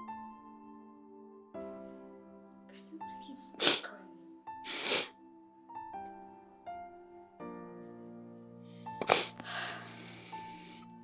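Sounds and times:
soft sad background music: 0:00.0 - 0:11.0
woman sniffing and sobbing: 0:03.6 - 0:03.9, 0:04.6 - 0:05.2, 0:09.0 - 0:10.9.

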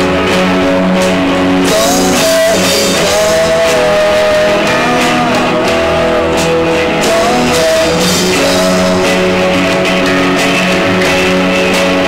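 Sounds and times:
electric guitar bending lead note: 0:00.0 - 0:12.0
live rock band: 0:00.0 - 0:12.0.

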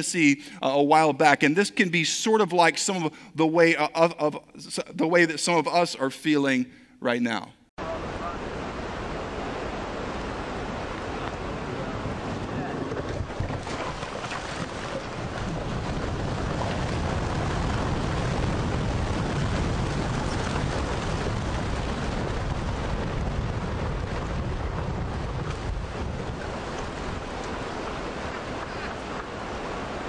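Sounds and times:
steady rushing noise: 0:07.8 - 0:30.0
deep rumble: 0:10.5 - 0:30.0
rocks crashing onto road: 0:13.0 - 0:22.5.

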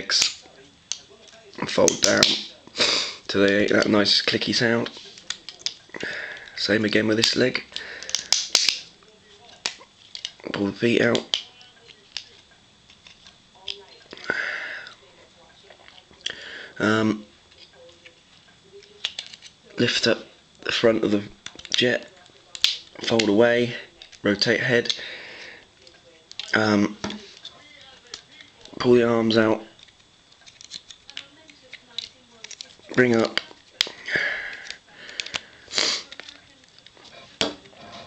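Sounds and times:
plastic toy parts clicking: 0:03.3 - 0:10.4, 0:18.8 - 0:19.6, 0:21.4 - 0:25.0, 0:25.8 - 0:28.9, 0:29.8 - 0:37.7.

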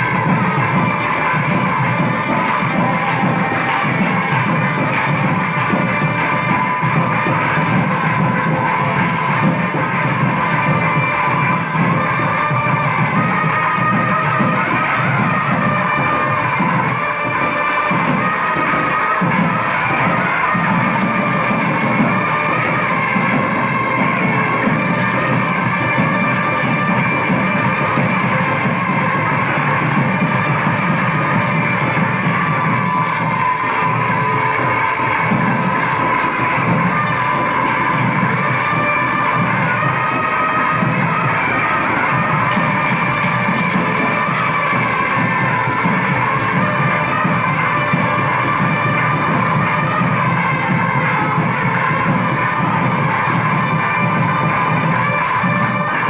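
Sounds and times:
steady drumming: 0:00.0 - 0:56.0.

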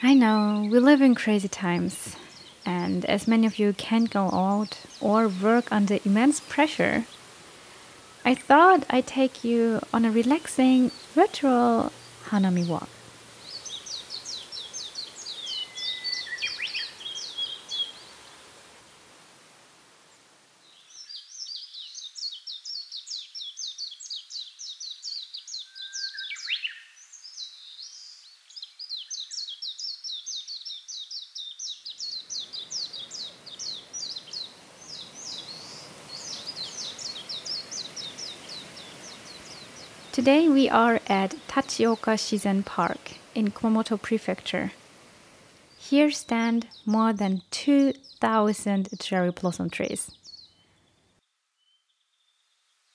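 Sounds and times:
songbirds chirping: 0:00.0 - 0:18.9, 0:20.0 - 0:52.9
faint outdoor hush: 0:00.0 - 0:20.6.

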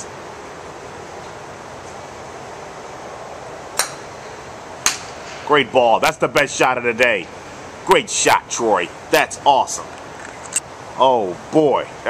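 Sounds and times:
indoor driving range background: 0:00.0 - 0:12.0
golf club striking ball: 0:03.8 - 0:04.2, 0:04.8 - 0:05.4.

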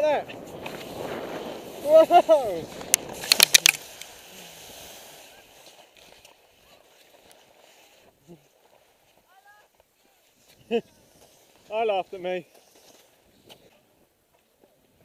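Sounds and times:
sliding snow hiss: 0:00.0 - 0:14.0
skis hitting snow: 0:00.1 - 0:08.0.

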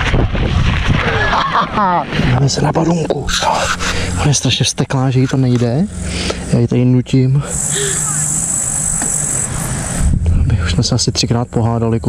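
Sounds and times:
wind rumble on microphone: 0:00.0 - 0:05.4, 0:09.8 - 0:12.0
low hum: 0:00.0 - 0:12.0
man speaking: 0:02.4 - 0:08.5, 0:10.4 - 0:12.0
insect chirring: 0:03.3 - 0:12.0.

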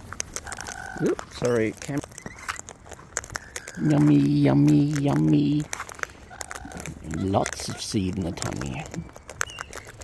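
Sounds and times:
birds cracking seeds: 0:00.0 - 0:10.0.

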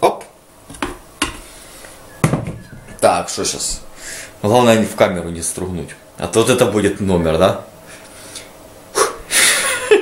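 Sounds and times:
objects knocking when set down: 0:02.2 - 0:03.0.

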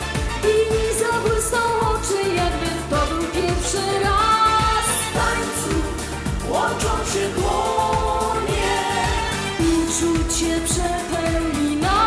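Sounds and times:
band with dance beat: 0:00.0 - 0:12.0
woman singing: 0:00.3 - 0:12.0.

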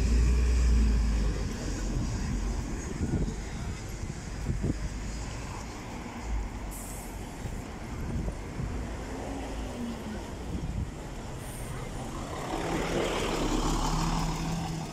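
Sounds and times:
bus engine hum: 0:00.0 - 0:14.9
cars passing: 0:00.0 - 0:14.9.

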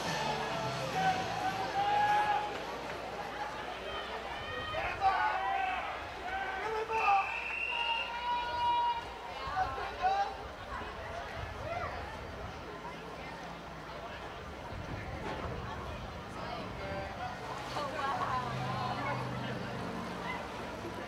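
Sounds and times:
spectators shouting and calling: 0:00.0 - 0:21.0.

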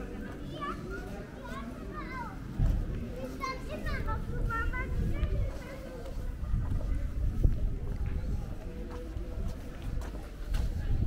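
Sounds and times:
children calling and chattering: 0:00.0 - 0:11.0.

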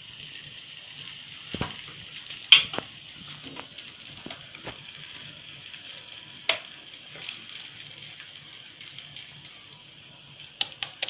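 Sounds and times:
flatbread sizzling in a pan: 0:00.0 - 0:09.2, 0:09.8 - 0:11.0.

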